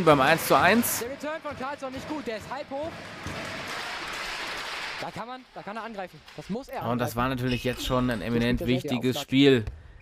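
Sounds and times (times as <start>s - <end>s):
audience applauding: 0.0s - 5.3s
voices: 5.0s - 9.6s.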